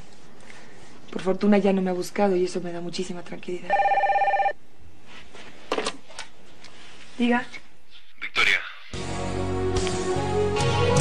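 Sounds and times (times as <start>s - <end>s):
cordless telephone ringing: 3.7s - 4.6s.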